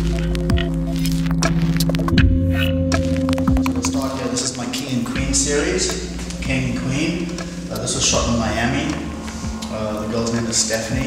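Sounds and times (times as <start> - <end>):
low hum with sustained tones: 0.0 - 11.0
man speaking: 3.8 - 11.0.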